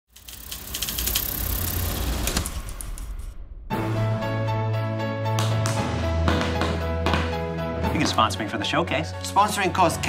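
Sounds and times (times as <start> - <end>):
film projector running: 0.1 - 2.4.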